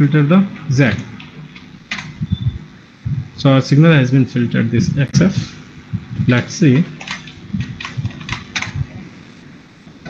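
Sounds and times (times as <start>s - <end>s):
computer keyboard keystrokes: 7.0s - 8.8s.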